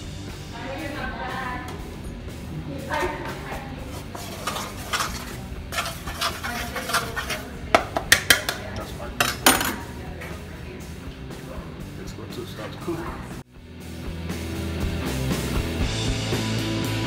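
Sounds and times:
bowl and utensils clattering: 3.9s - 10.0s.

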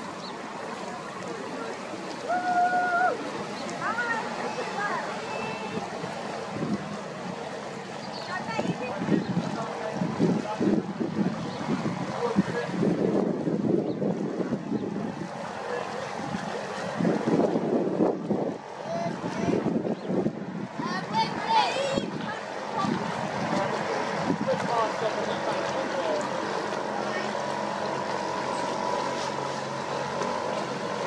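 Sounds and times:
distant people talking: 0.6s - 13.0s, 14.2s - 17.1s, 20.7s - 31.0s.

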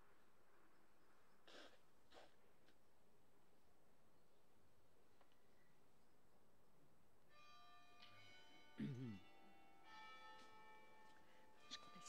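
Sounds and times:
faint church bells ringing: 7.2s - 12.0s.

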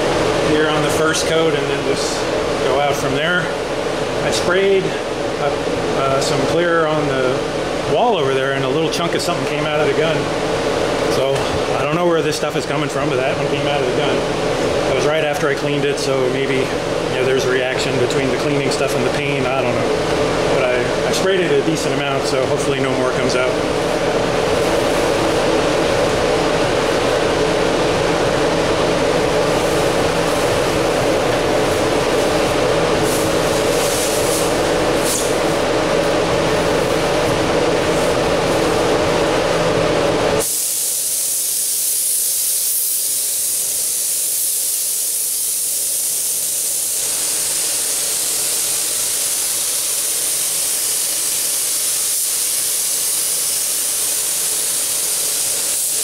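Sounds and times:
air handling noise with hum: 0.0s - 56.0s
paint spray gun hissing: 40.4s - 56.0s.

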